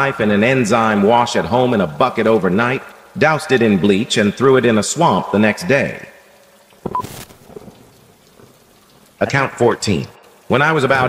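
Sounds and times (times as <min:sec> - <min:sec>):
short hiss: 0:06.8 - 0:07.6
brief beep: 0:06.9 - 0:07.1.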